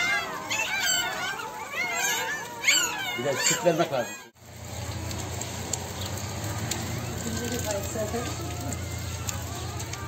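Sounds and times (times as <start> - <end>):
puppies whimpering and squealing: 0.0 - 4.4.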